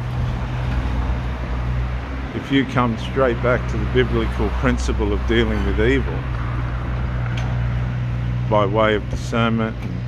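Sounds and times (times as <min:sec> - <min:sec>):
street traffic rumble: 0:00.0 - 0:10.0.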